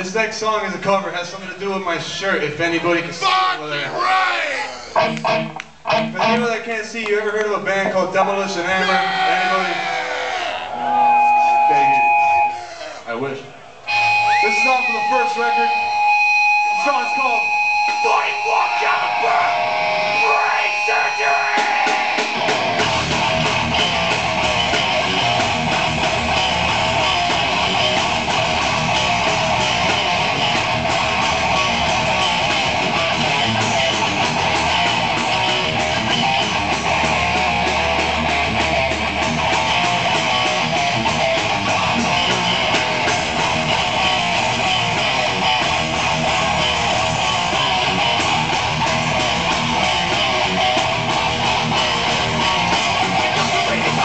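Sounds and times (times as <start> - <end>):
electric guitars: 3.9 - 8.0, 8.7 - 54.0
rock band playing: 4.4 - 6.6, 8.7 - 12.8, 13.8 - 54.0.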